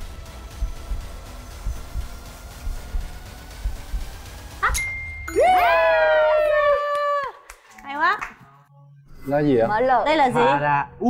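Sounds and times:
dull low thumps: 0:00.0 - 0:04.6.

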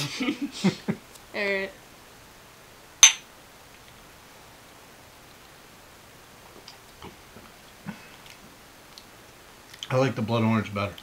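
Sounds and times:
glass clinking: 0:03.0 - 0:03.3.

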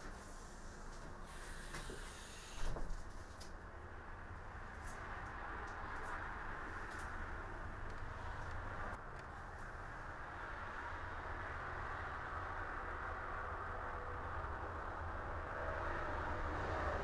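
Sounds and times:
ambient rumble and hiss: 0:00.0 - 0:17.0.

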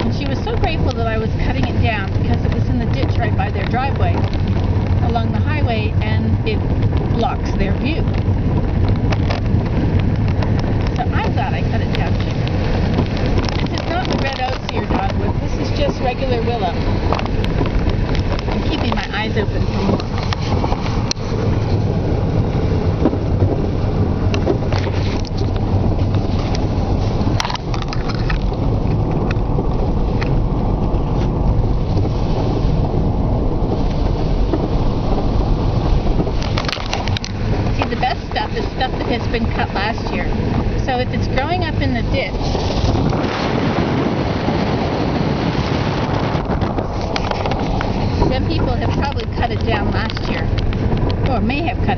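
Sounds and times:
car engine and road rumble: 0:00.0 - 0:51.9
gravel clicks and rattles: 0:00.0 - 0:51.9.

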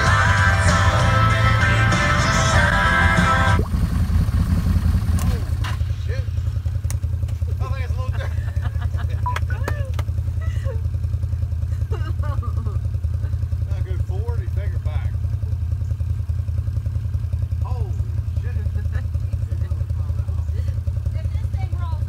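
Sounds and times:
engine idling: 0:00.0 - 0:22.0
voices calling out: 0:17.6 - 0:22.0.

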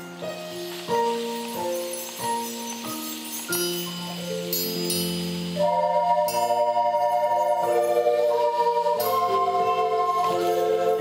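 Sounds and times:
recorder ensemble playing chords: 0:05.5 - 0:11.0.

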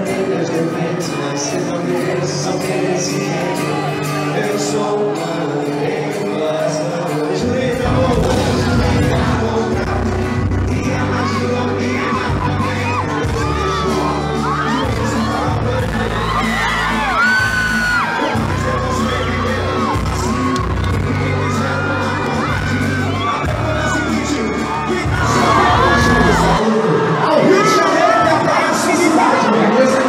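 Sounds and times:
crowd singing and shouting: 0:00.0 - 0:30.0
man singing lead: 0:00.0 - 0:30.0
live band music: 0:07.4 - 0:26.6.

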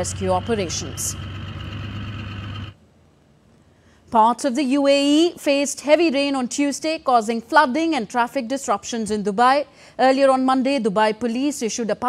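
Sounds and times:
motorboat engine humming: 0:00.0 - 0:02.8.

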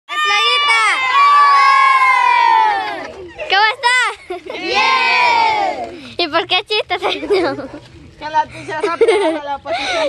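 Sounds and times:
children shouting a cheer: 0:00.1 - 0:03.2, 0:04.6 - 0:05.9.

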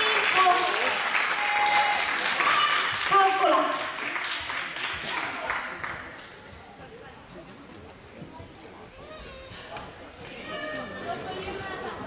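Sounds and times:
people talking in echoing hall: 0:00.0 - 0:12.0.

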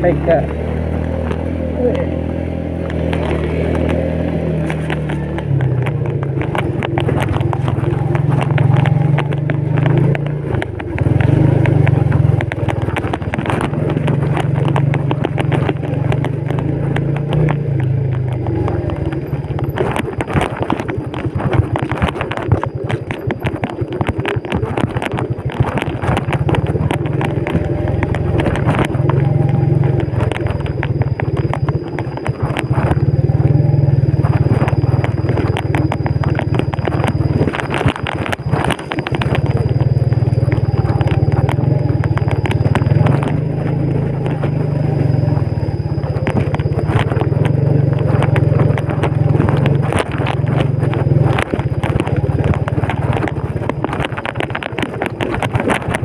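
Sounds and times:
motorcycle engine under load: 0:00.0 - 0:56.0
motorcycle rattling over rough ground: 0:00.0 - 0:56.0.

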